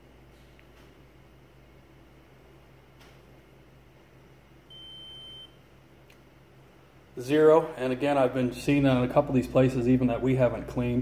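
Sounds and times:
faint room hum: 0.0 - 11.0
high-pitched beep: 4.7 - 5.5.

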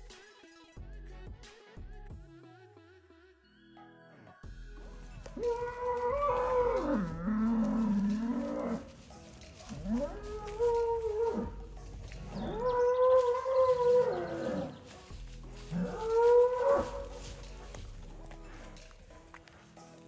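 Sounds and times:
cattle mooing: 5.2 - 9.0, 9.6 - 15.0, 15.6 - 17.6.

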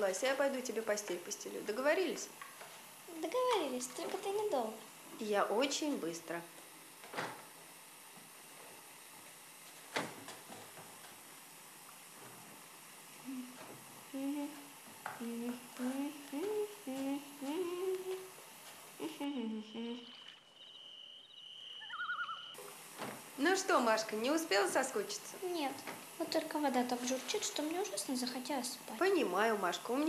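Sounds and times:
girl humming a tune: 13.2 - 18.3, 19.0 - 20.3
bathtub filling with water: 22.0 - 30.0.

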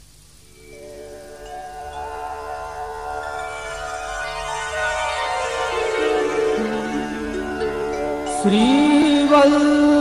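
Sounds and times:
layered sustained instrumental notes: 0.5 - 10.0
person singing: 5.1 - 10.0.

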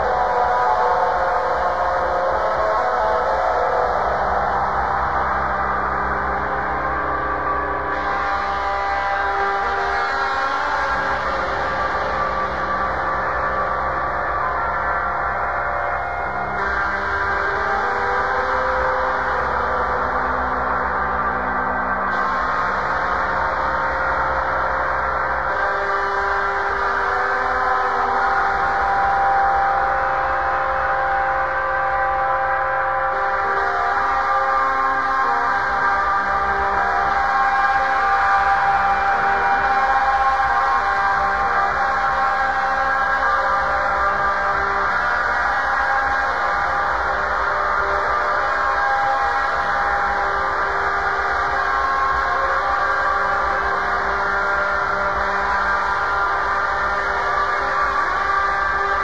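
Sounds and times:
experimental drone music: 0.0 - 59.0.

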